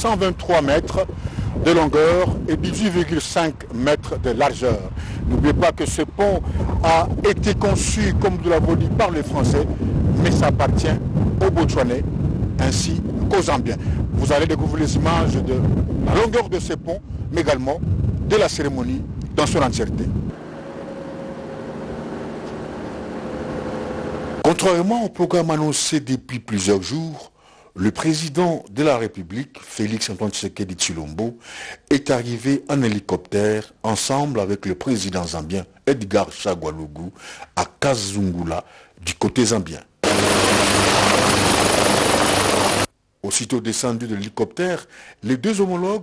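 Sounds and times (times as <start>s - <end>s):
helicopter rotor and engine: 20.3s - 24.4s, 40.0s - 42.9s.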